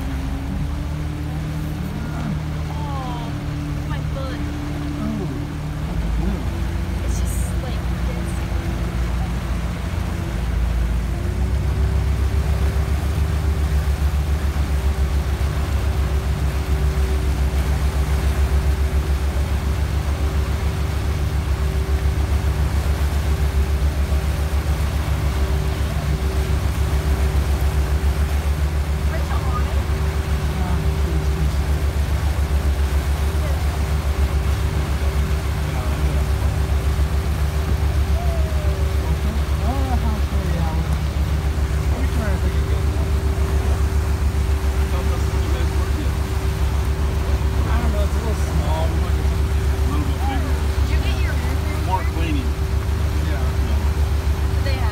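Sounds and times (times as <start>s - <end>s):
churning wake: 0.0s - 54.9s
motorboat engine running: 0.0s - 54.9s
wind: 0.0s - 54.9s.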